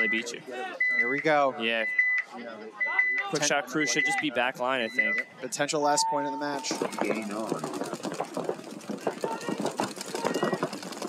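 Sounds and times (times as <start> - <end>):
paintball markers firing rapidly: 6.6 - 11.0.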